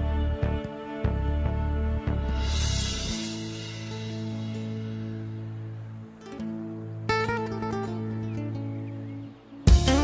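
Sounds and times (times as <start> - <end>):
acoustic guitar music: 3.2 - 10.0.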